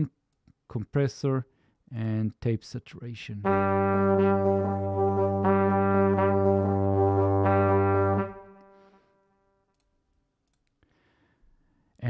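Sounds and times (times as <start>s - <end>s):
brass ensemble sustained chord: 3.4s - 9.1s.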